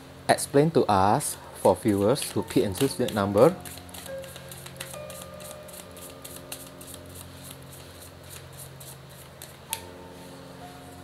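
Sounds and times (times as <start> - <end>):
cards being shuffled: 1.8 - 9.9.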